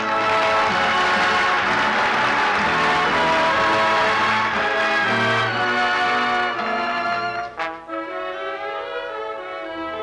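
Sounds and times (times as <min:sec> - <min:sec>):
orchestra playing: 0:00.0 - 0:10.0.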